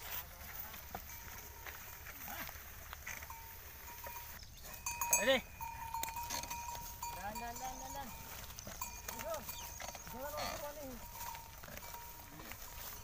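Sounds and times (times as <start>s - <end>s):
farm animals calling: 0.1s - 13.0s.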